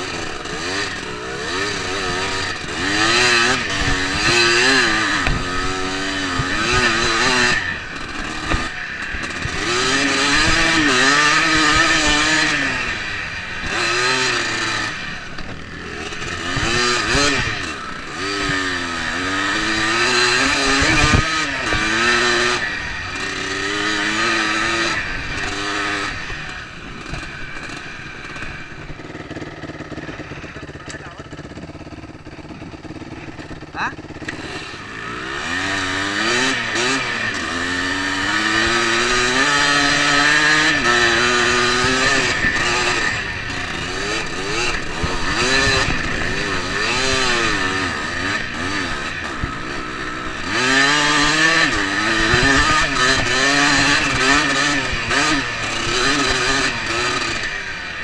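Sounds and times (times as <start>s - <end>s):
dirt bike engine revving: 0.0s - 58.0s
sharp knocks: 3.8s - 5.6s.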